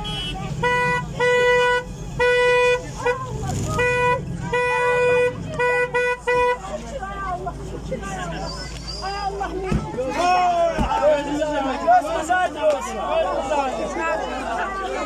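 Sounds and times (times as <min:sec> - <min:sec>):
car horn honking: 0:00.0 - 0:06.8.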